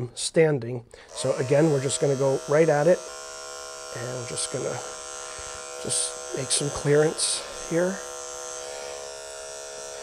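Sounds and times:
electric clipper buzzing: 1.1s - 10.0s.

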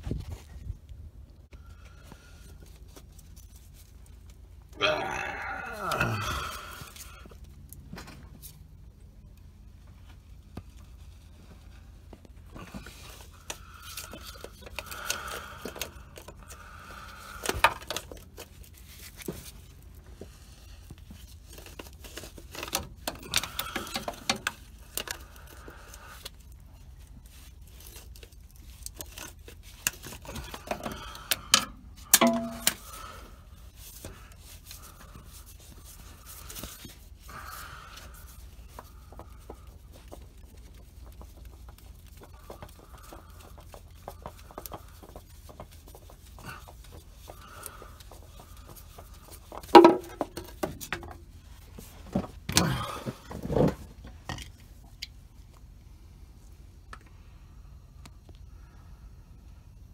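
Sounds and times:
sharp metallic knocks: 32.2s - 32.8s.

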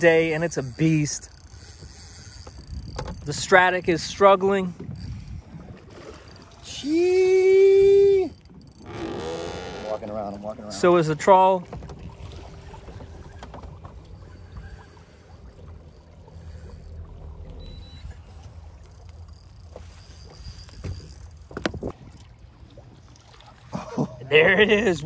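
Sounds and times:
water against boat hull: 0.0s - 24.3s
wind rumble: 1.7s - 10.3s.

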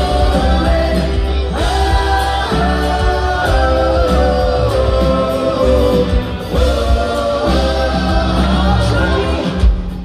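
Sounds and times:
voices singing in harmony: 0.0s - 9.9s
rock band playing: 0.0s - 10.0s.

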